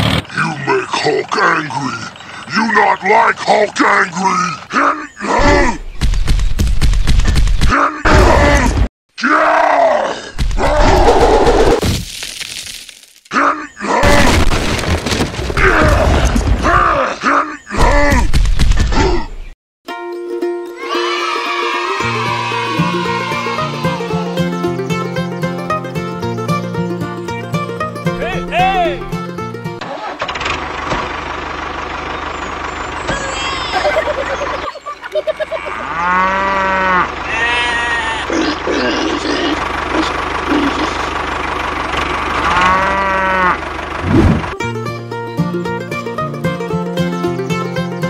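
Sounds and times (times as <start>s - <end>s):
small tractor engine running: 0.0s - 0.4s, 29.8s - 35.6s, 36.4s - 44.9s
man groaning with effort: 4.1s - 5.8s, 7.7s - 11.7s, 13.3s - 14.4s, 15.6s - 18.3s, 18.9s - 19.4s, 35.6s - 41.1s
music: 19.9s - 29.8s, 44.6s - 48.0s.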